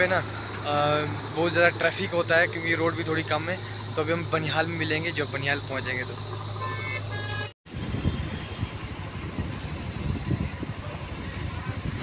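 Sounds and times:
motorcycle engine: 0:00.0 - 0:12.0
road noise: 0:00.0 - 0:12.0
wind buffeting microphone: 0:07.7 - 0:12.0.

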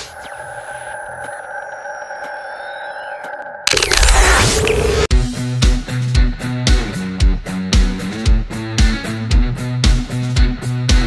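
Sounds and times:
synthesized drone: 0:00.0 - 0:05.1.

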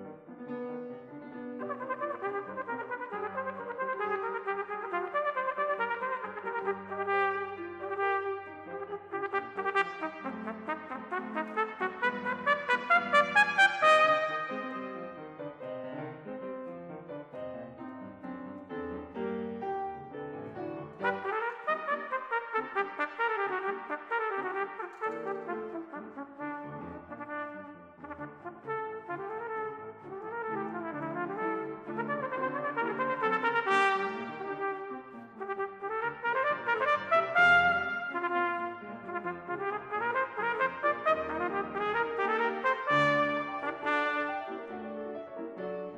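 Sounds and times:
brass band chords: 0:00.9 - 0:15.8, 0:17.7 - 0:45.9
solo cornet playing: 0:01.6 - 0:15.2, 0:20.9 - 0:45.2.

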